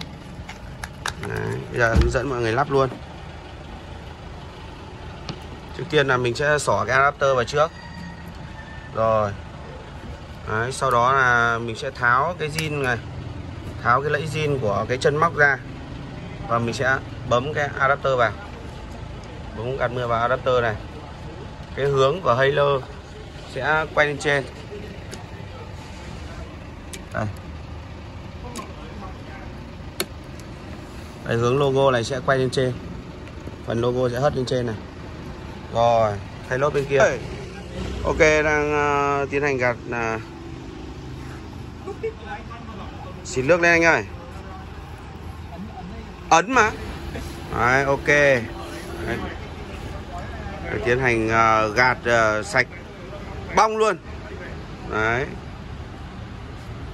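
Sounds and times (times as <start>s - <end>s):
low rumble of vehicle traffic: 0.0s - 56.9s.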